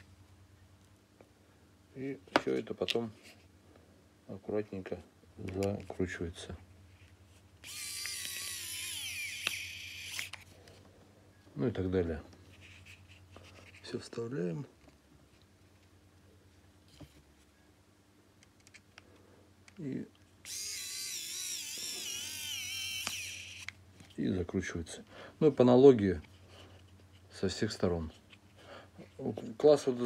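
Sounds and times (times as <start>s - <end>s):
electric screwdriver motor whine: 7.6s - 10.4s, 20.4s - 23.7s.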